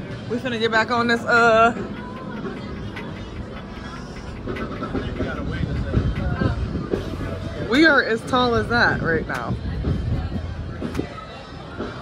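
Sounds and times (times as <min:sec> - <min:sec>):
faint voices: 0:00.0 - 0:12.0
music: 0:00.0 - 0:12.0
steady low rumble: 0:01.3 - 0:12.0.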